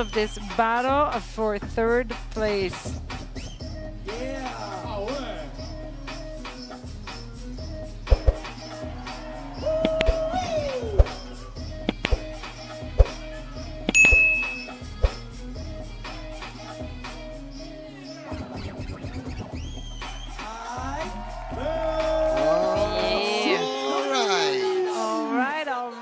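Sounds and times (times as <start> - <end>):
hip-hop breakbeat music: 0.0 - 25.4.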